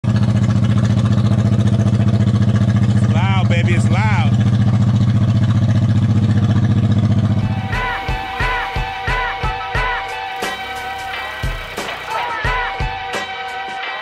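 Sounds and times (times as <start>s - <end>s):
motorcycle engine idling: 0.0s - 13.2s
person calling out: 12.0s - 12.9s.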